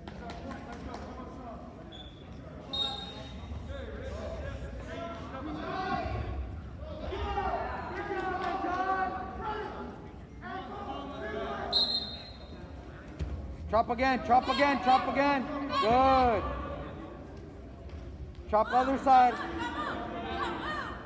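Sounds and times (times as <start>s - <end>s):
people talking and calling out: 0.0s - 21.0s.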